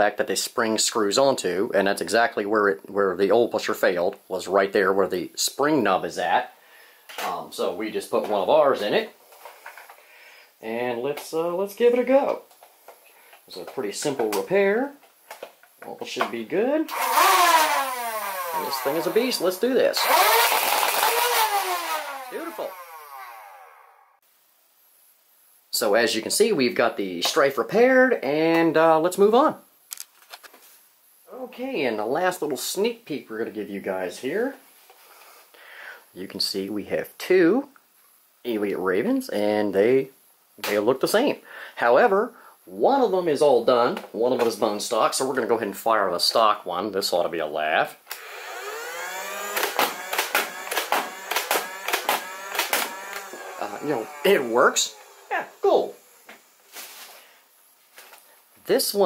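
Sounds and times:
toy blaster motors spinning down: 16.9 - 19.4, 20.0 - 24.2, 48.2 - 56.6.

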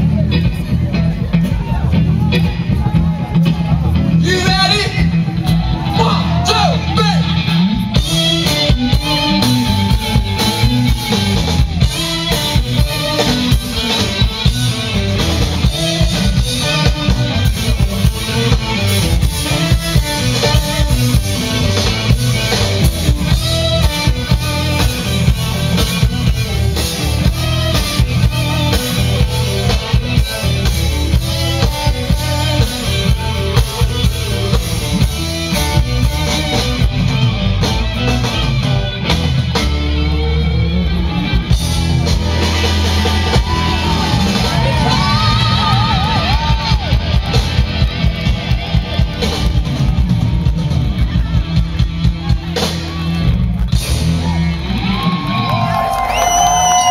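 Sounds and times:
live funk band playing: 0.0 - 56.9.

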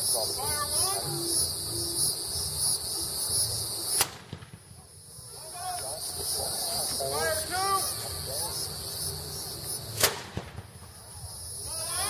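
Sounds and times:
background buzz: 0.0 - 12.0
voices: 0.0 - 12.0
cannon shot: 3.9 - 4.9, 10.0 - 10.8.

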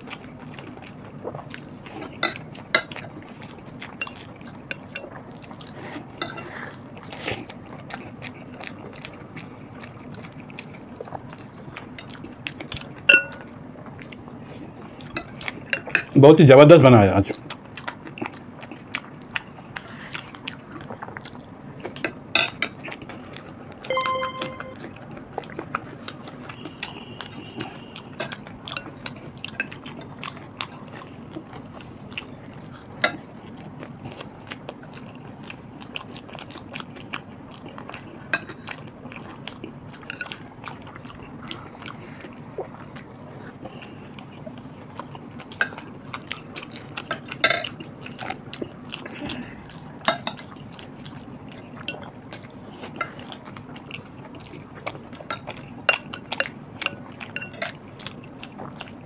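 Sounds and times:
crunching and chewing: 0.0 - 16.2, 17.2 - 23.8, 25.3 - 59.0
ringing tone: 23.9 - 24.8.

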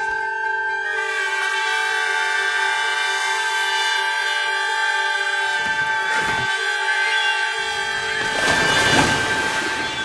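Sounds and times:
trumpets holding a chord: 0.0 - 10.0.

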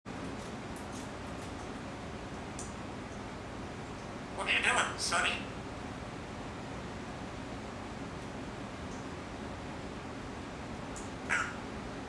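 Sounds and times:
parrot call: 11.3 - 11.7.

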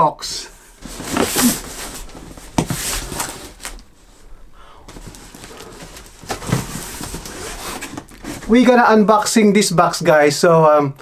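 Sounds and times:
cardboard box scraping rustles: 0.8 - 3.8, 4.9 - 8.6.

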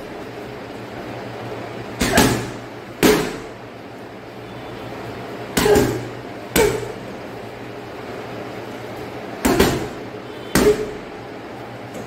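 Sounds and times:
punches thudding on heavy bag: 2.0 - 3.5, 5.6 - 7.0, 9.4 - 11.0.

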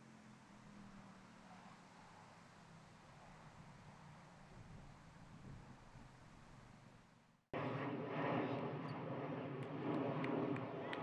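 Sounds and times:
steady outdoor drone: 0.0 - 11.0.

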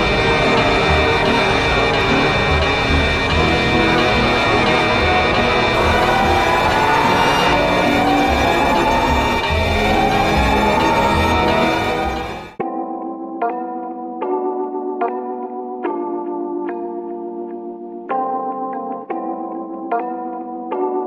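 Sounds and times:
eerie electronic alarm music: 0.0 - 12.6
siren-like rising tone: 0.0 - 12.6.

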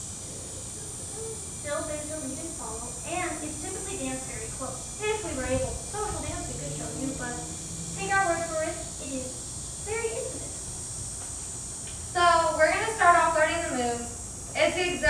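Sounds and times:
high background hiss: 0.0 - 15.0
woman speaking: 1.6 - 10.6, 12.2 - 15.0.

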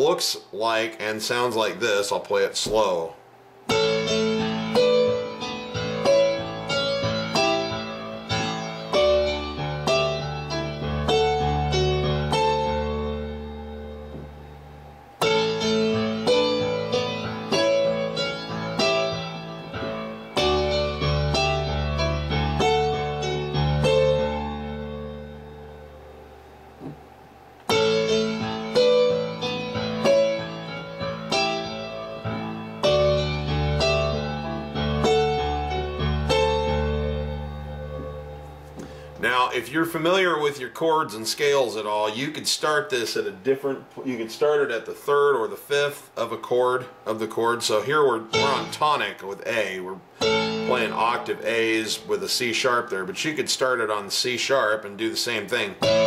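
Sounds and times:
digital piano playing: 3.7 - 26.5, 27.7 - 43.0, 47.5 - 56.0.

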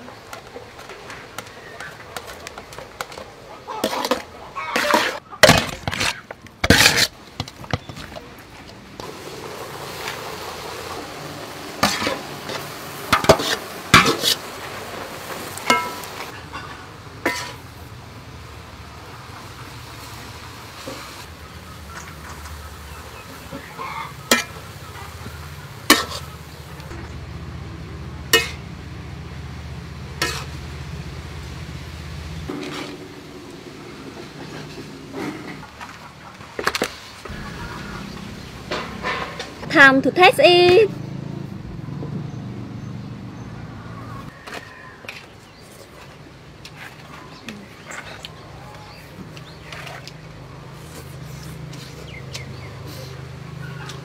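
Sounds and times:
utensil scraping metal bowl: 3.8 - 8.1, 30.2 - 30.6
noodles sizzling in a wok: 9.0 - 16.4, 17.2 - 26.9.

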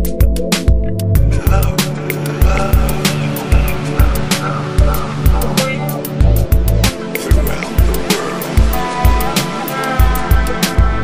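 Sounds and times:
kick-drum beat: 0.0 - 5.6, 6.2 - 9.4, 10.0 - 11.0
deep bass: 0.0 - 9.4
electronic chill-out music: 0.0 - 11.0
sustained synth layers: 1.2 - 11.0.

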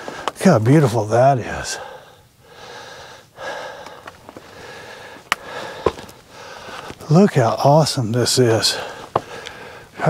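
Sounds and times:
person breathing close: 1.7 - 7.0, 8.7 - 10.0.

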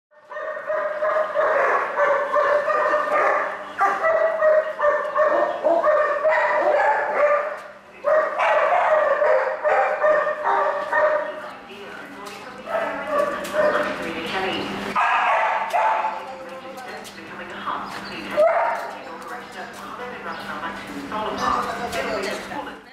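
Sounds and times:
dog barking yipping and whining: 0.3 - 11.3, 15.0 - 16.2.

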